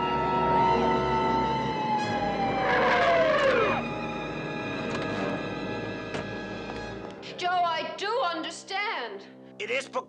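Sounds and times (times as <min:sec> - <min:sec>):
police siren winding down: 0:00.0 - 0:05.4
tyres squealing: 0:02.4 - 0:03.9.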